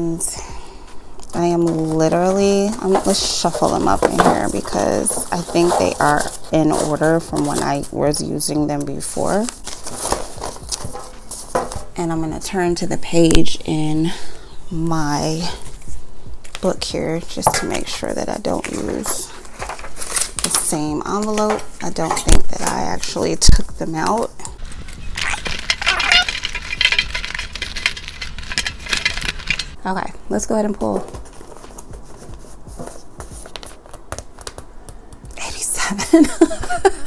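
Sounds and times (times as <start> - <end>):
paper envelopes rustling: 1.3 - 12.0, 17.8 - 23.2, 24.0 - 29.8, 30.8 - 35.4
envelopes knocking against tin: 24.7 - 29.8.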